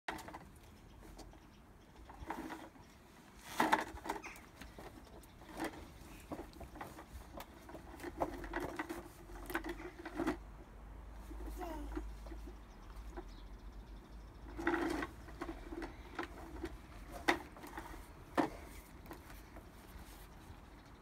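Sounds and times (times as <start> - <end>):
toy lawn mower rattling and clicking: 0.1 - 1.3, 1.9 - 10.5, 11.2 - 13.4, 14.4 - 20.3.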